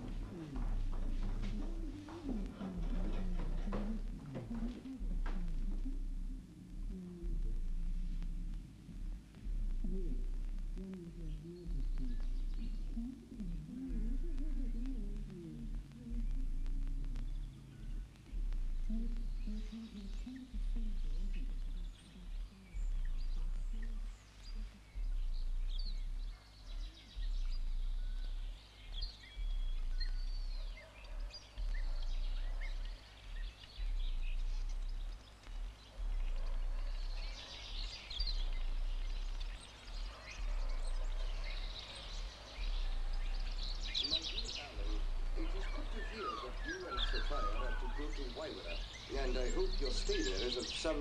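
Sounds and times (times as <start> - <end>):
faint bird chirps: 0.0 - 51.0
steady low hum: 0.0 - 51.0.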